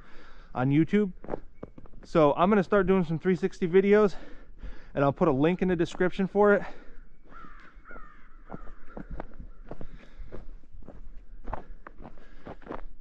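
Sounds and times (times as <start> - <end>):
footsteps crunching on snow: 0.0 - 13.0
bird calls: 6.6 - 10.2.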